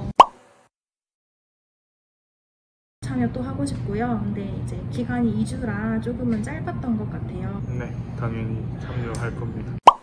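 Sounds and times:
pop sound effect: 0.1s - 0.4s.

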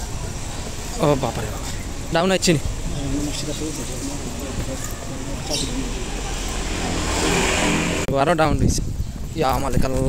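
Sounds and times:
motor vehicle passing: 4.2s - 8.1s.

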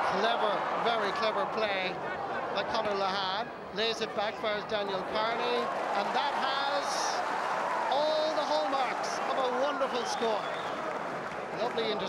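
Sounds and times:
man commentating: 0.0s - 7.2s, 7.9s - 10.5s, 11.6s - 12.0s
stadium background noise: 0.0s - 12.0s.

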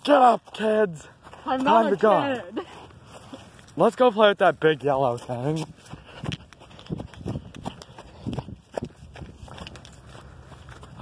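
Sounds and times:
footsteps on grass: 0.0s - 11.0s.

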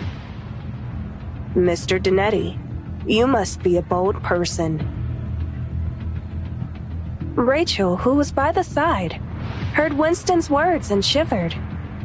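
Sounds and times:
low sustained music tones: 0.0s - 12.0s.

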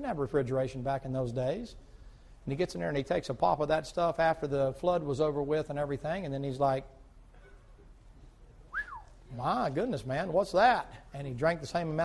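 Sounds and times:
man whistling in surprise: 8.7s - 9.2s.

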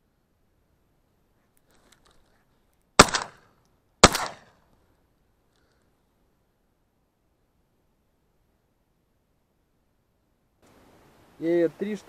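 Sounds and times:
shotgun shots with echo: 3.0s - 3.4s, 4.0s - 4.5s.

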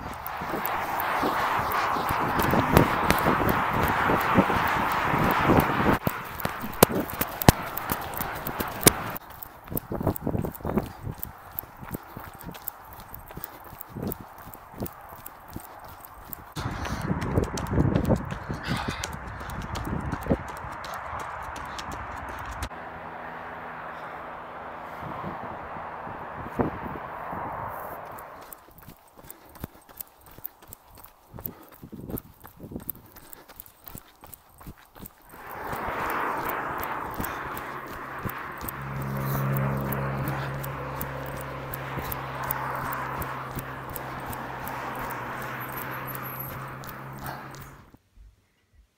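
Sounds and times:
running footsteps on dirt: 0.0s - 22.8s, 27.8s - 48.0s
steady rushing noise: 0.0s - 22.8s, 35.0s - 47.9s.

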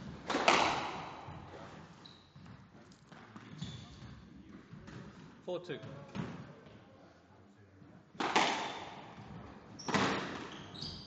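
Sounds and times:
squash ball cracking off walls: 0.2s - 1.3s, 8.2s - 9.3s
shoes squeaking on wooden floor: 1.2s - 4.2s, 9.2s - 11.0s.

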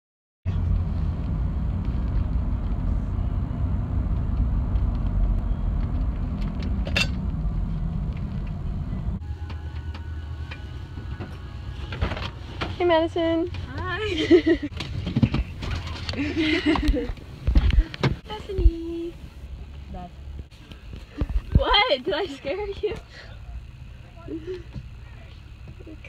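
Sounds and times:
car driving rumble inside cabin: 0.5s - 26.0s.

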